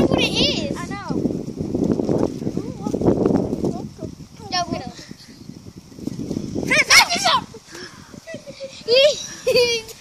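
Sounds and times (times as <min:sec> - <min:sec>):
rustling and shuffling: 0:00.0 - 0:10.0.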